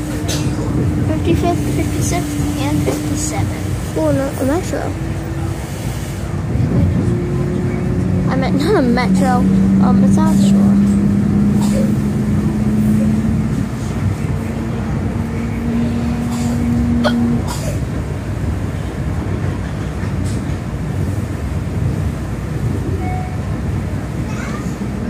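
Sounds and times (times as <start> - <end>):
electric train rumble: 0.0 - 25.0.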